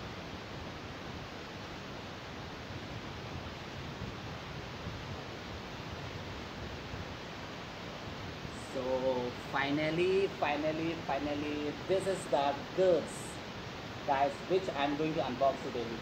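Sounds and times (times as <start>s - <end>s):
steady background hiss: 0.0s - 16.0s.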